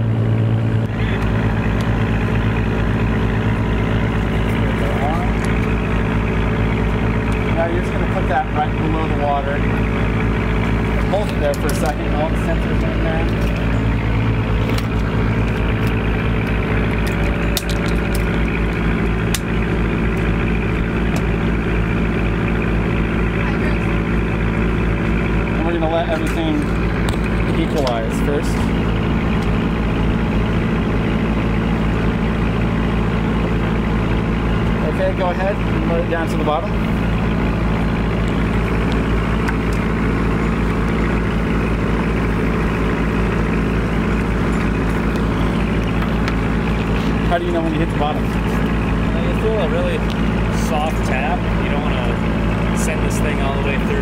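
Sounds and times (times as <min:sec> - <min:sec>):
boat engine droning: 0:00.0 - 0:54.0.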